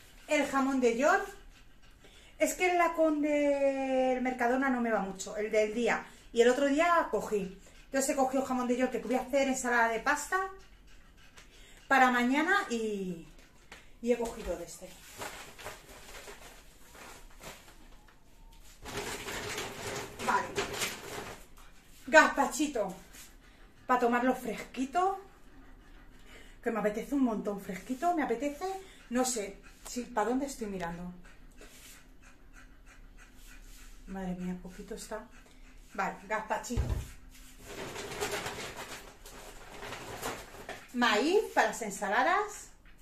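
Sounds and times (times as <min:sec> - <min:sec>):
plastic bag rustling: 0:15.0 - 0:18.0, 0:18.7 - 0:21.5.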